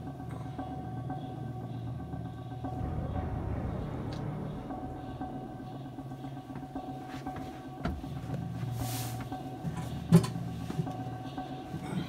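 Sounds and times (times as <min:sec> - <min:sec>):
steady low hum: 0:00.1 - 0:08.6.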